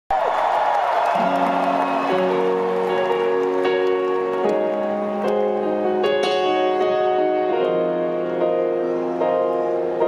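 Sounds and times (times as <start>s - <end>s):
stadium crowd cheering: 0.1s - 6.0s
slow sustained piano chords: 1.1s - 10.0s.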